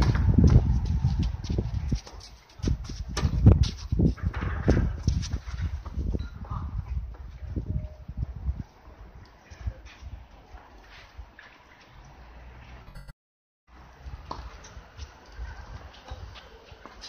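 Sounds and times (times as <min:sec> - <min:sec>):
footsteps on court: 0:00.0 - 0:06.1
wind rumble on microphone: 0:00.0 - 0:11.4, 0:13.8 - 0:16.8.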